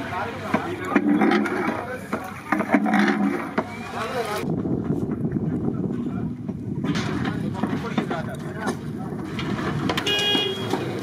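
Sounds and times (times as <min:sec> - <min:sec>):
people chattering: 0:00.0 - 0:04.5.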